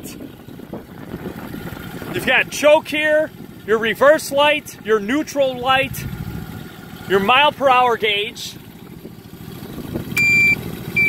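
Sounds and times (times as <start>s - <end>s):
engine idling rumble: 0.0s - 11.0s
high electronic beep: 10.2s - 11.0s.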